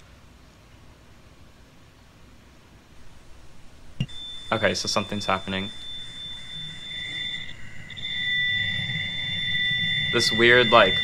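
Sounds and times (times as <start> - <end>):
deep rumble: 3.0 - 11.0
higher steady tone: 3.1 - 11.0
high-pitched whistle: 4.0 - 11.0.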